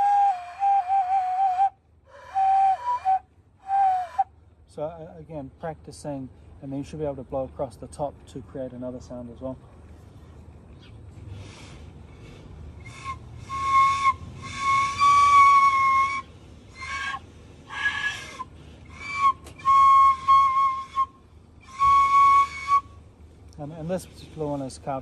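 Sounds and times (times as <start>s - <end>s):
breathy wooden flute notes: 0.0s - 4.3s, 11.3s - 23.0s.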